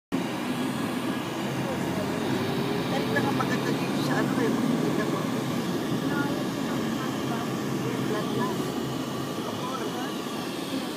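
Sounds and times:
vehicle road and engine noise: 0:00.1 - 0:10.9.

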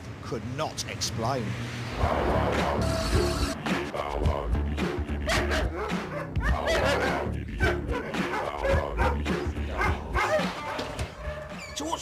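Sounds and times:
background music: 0:01.8 - 0:12.0
dog barking: 0:05.3 - 0:11.5.

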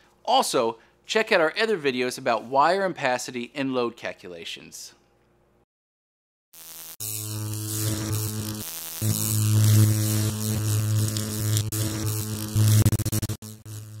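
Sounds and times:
crackling static: 0:06.6 - 0:14.0.

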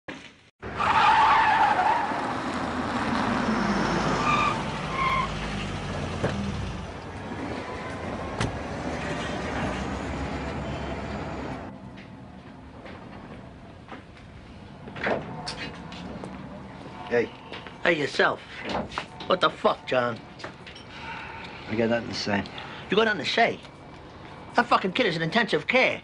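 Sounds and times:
tires squealing: 0:00.6 - 0:11.7
car engine and road noise: 0:00.6 - 0:26.0.

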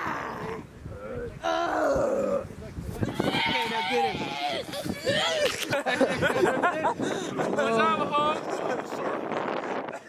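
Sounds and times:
young people shouting: 0:03.1 - 0:05.6
young people laughing: 0:04.5 - 0:09.1.

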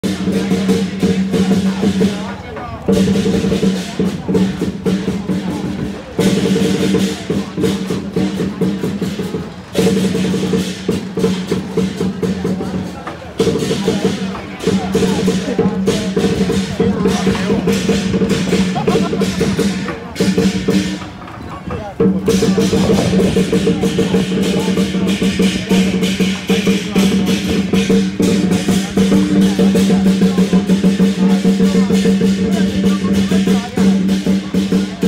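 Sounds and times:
cymbals: 0:00.0 - 0:35.0
drum: 0:00.0 - 0:35.0.

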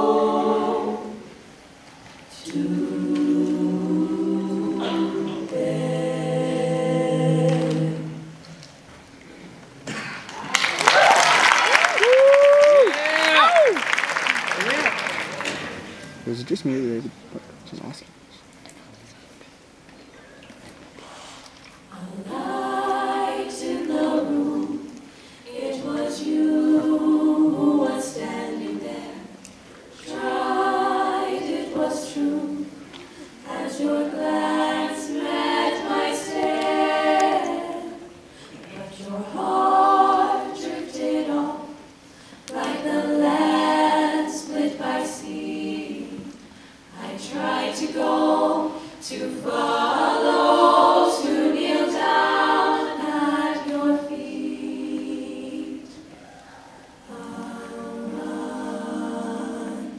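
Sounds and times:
women's a cappella group singing: 0:00.0 - 0:08.7, 0:21.0 - 0:59.9.

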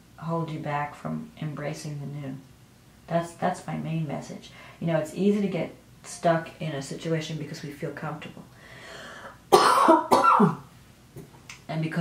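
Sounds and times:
woman coughing: 0:09.5 - 0:10.7.

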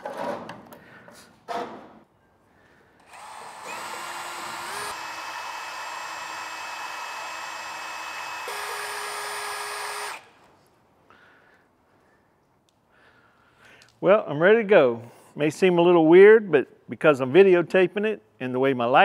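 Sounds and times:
drill motor whining: 0:03.0 - 0:10.3.

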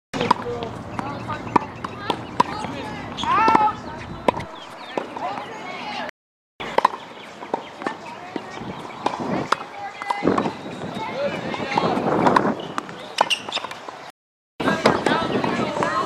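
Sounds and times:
tennis ball struck by racket: 0:00.2 - 0:05.2
voices talking: 0:00.2 - 0:16.0.

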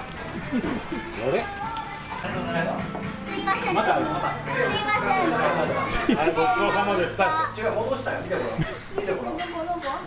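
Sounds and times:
child's voice: 0:03.3 - 0:07.6.

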